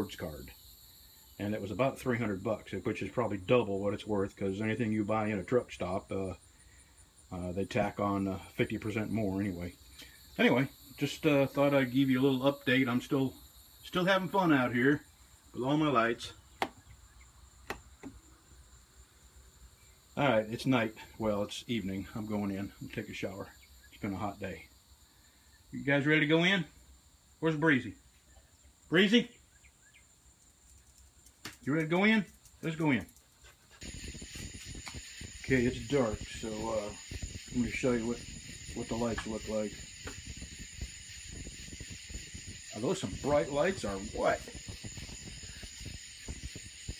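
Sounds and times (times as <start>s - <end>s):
crickets chirring: 0.0s - 46.9s
night insects hissing: 0.0s - 46.9s.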